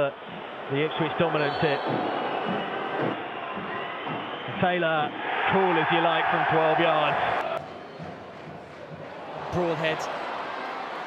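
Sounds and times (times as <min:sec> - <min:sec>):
stadium crowd hum: 0:00.0 - 0:11.0.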